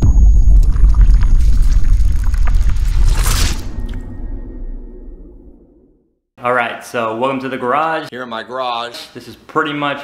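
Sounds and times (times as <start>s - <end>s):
deep rumble: 0.0s - 6.1s.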